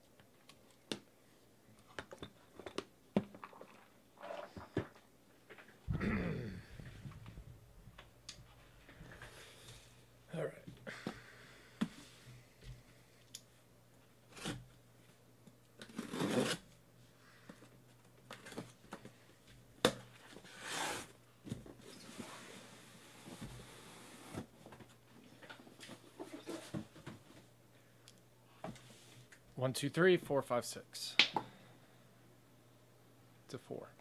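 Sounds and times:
tape tearing: 14.3 - 14.6, 15.8 - 16.6.

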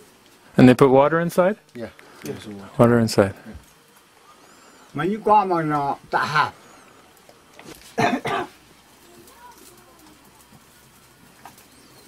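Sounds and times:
man coughing: 8.0 - 8.6.

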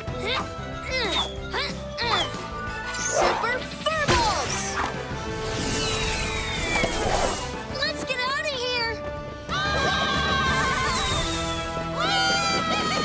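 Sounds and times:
cartoon background music: 0.0 - 13.0
whoosh with falling whistle: 5.6 - 7.4.

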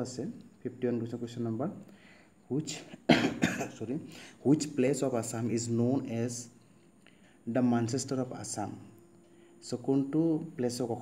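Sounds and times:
man speaking: 0.0 - 1.9, 2.5 - 6.6, 7.4 - 9.0, 9.6 - 11.0
man coughing: 2.9 - 4.0.

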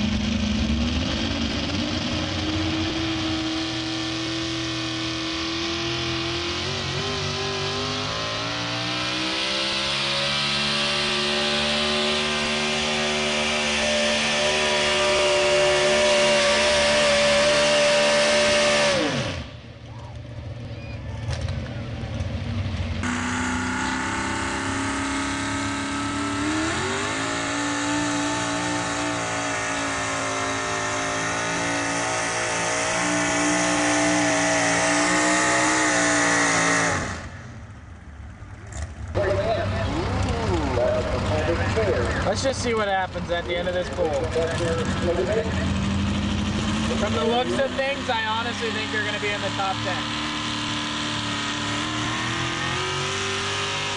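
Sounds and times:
pickup truck engine revving under load: 0.0 - 19.6, 22.5 - 37.8, 38.4 - 53.9.

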